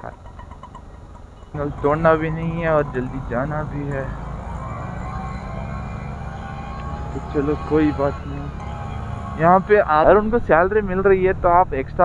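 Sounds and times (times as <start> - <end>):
scooter engine running: 0.0 - 11.1
faint steady whine: 0.0 - 12.0.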